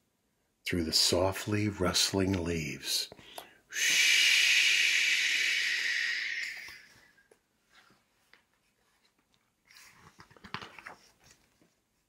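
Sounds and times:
man making breathy shushing sound: 3.7s - 7.2s
book page turning: 7.7s - 12.0s.

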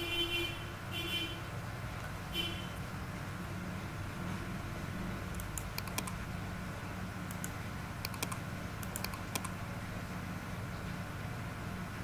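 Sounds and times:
steady low hum: 0.0s - 12.0s
keyboard and mouse clicks: 5.3s - 6.2s, 7.3s - 9.6s.

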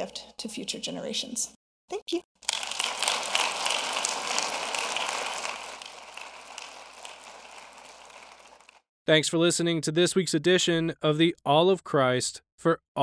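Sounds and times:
audience applauding: 2.4s - 8.8s.

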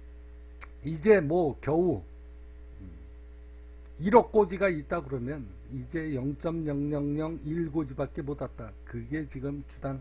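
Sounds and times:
electrical mains hum: 0.0s - 10.0s
faint vocal sound: 2.7s - 3.2s.

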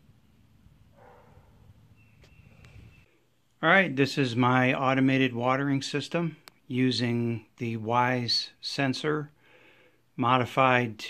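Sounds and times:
low rumble of wind: 0.0s - 3.1s.

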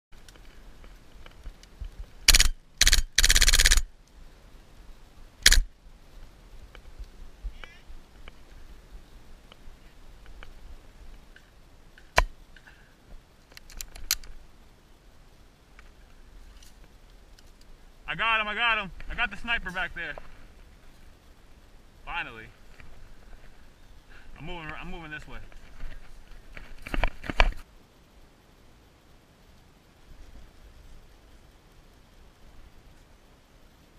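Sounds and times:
airsoft rifle firing bursts: 2.3s - 3.9s, 5.4s - 5.7s.

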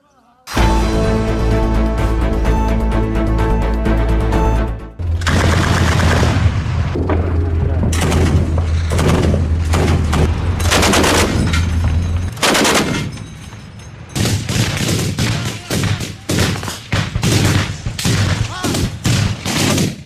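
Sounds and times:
automatic gunfire bursts: 5.3s - 6.4s, 8.0s - 11.3s, 12.4s - 13.0s.

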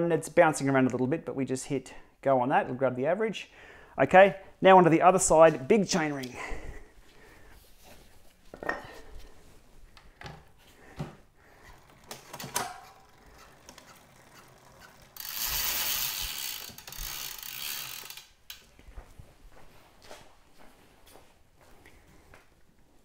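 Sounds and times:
freewheel ratcheting: 11.8s - 18.6s
bicycle parts clicking and knocking: 11.8s - 18.7s.

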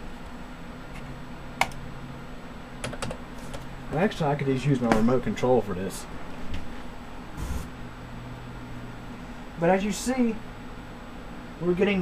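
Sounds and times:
low hum: 7.3s - 7.8s.

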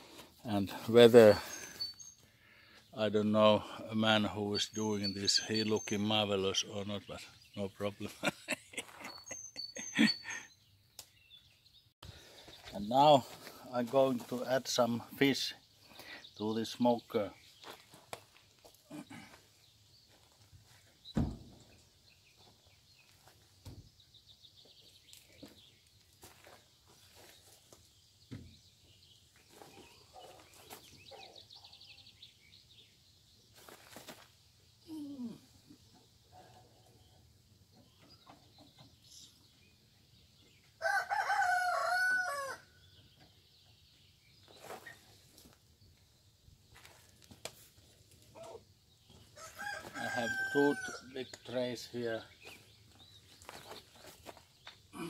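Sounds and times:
rooster crowing: 40.8s - 42.7s, 49.4s - 51.1s.

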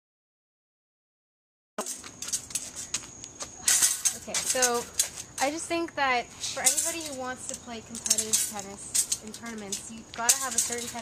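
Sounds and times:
small clicks and rattles: 6.6s - 11.0s.

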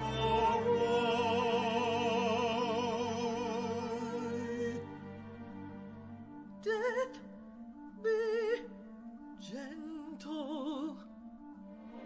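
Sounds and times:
woman singing opera: 0.0s - 5.0s, 6.6s - 7.4s, 8.0s - 8.8s, 9.4s - 11.1s
lower voice singing opera: 0.0s - 5.2s, 6.6s - 7.3s.

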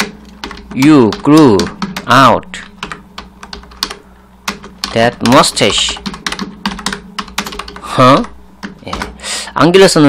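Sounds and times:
typing on computer keyboard: 0.0s - 9.2s.

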